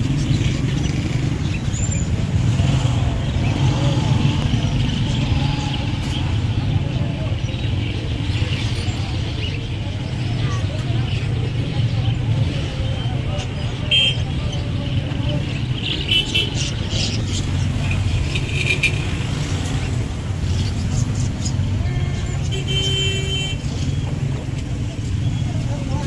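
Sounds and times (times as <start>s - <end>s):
traffic rumble: 0.0s - 26.0s
voices: 0.0s - 26.0s.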